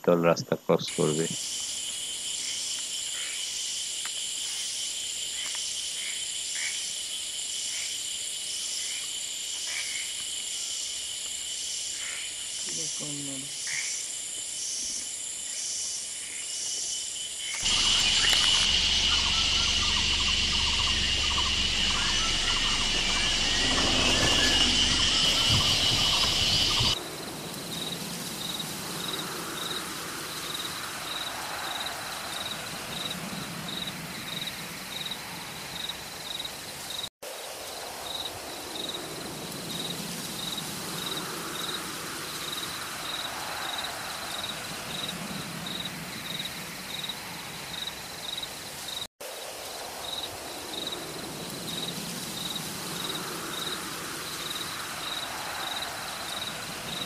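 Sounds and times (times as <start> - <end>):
insect chirping: 0.2 - 57.0
high-pitched insect chorus: 0.3 - 57.0.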